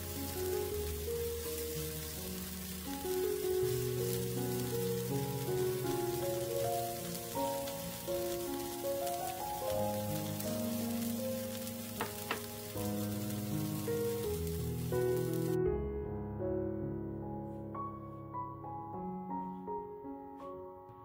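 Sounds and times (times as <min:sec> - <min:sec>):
food sizzling in oil: 0:00.0 - 0:15.6
soft piano-like background music: 0:00.0 - 0:21.0.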